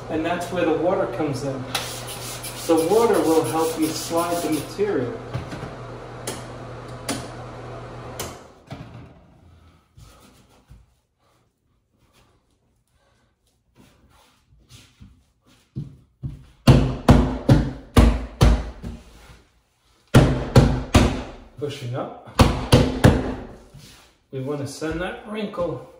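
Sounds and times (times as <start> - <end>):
hands rubbing wallcovering: 23.6 - 24.2.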